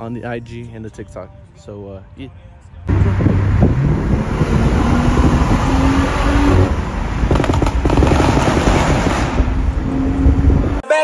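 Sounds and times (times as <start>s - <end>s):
wind and road noise: 2.3s - 10.8s
exhaust crackles: 2.9s - 10.7s
car engine accelerating: 2.9s - 10.8s.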